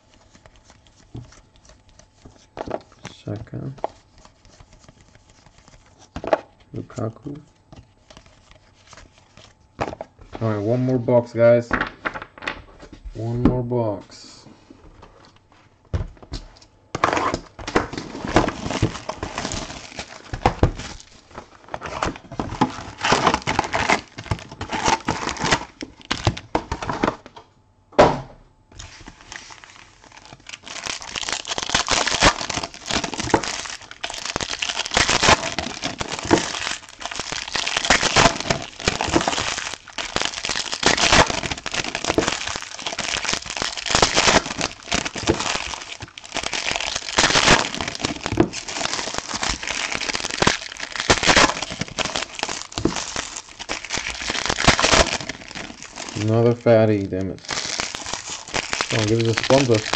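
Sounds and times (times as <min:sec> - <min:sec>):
foil wrappers crinkling: 0:00.0 - 0:10.6, 0:17.9 - 0:27.1, 0:28.8 - 0:59.9.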